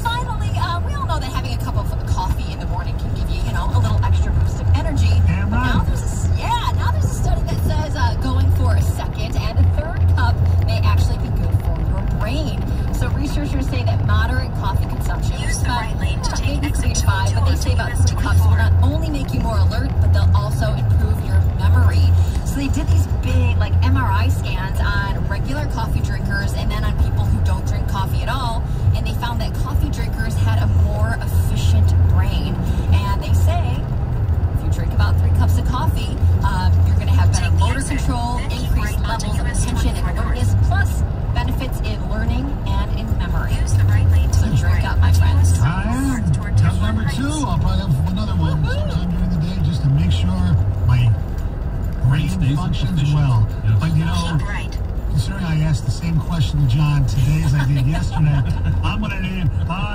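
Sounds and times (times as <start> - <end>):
car road noise: 0.0 - 59.9
music on car radio: 0.0 - 59.9.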